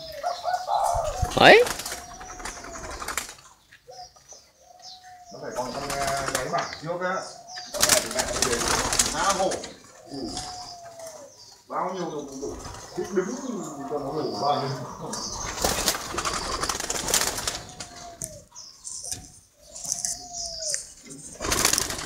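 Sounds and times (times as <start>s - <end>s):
doves cooing: 0.0s - 22.0s.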